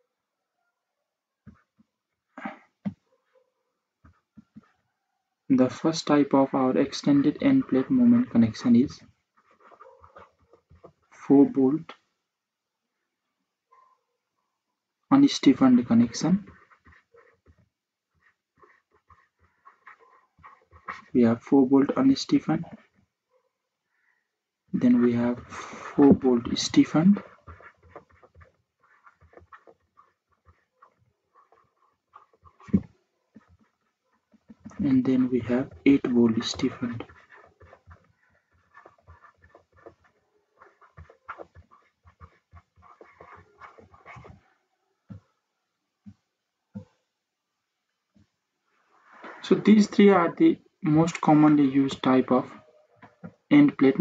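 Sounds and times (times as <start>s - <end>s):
stylus scratching on tablet: 1.4s - 12.0s, 15.1s - 23.4s, 24.7s - 45.4s, 49.0s - 54.0s.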